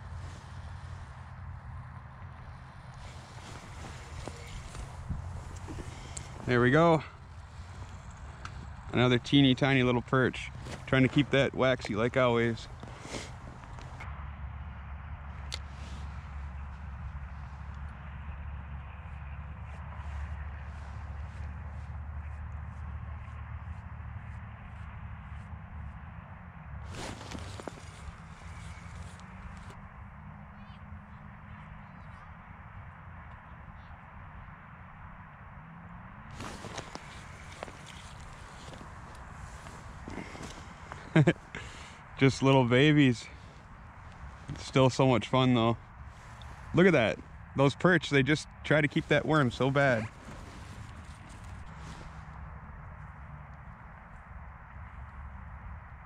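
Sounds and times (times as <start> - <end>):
steady low rumble: 0.0 - 33.0, 36.0 - 56.0
rustling handling noise: 2.4 - 9.3, 10.0 - 14.0, 26.9 - 29.8, 36.3 - 42.4, 48.8 - 52.3.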